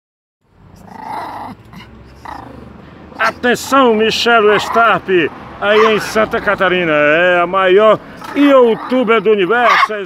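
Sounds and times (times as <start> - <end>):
small dog growling: 0.8 - 2.7.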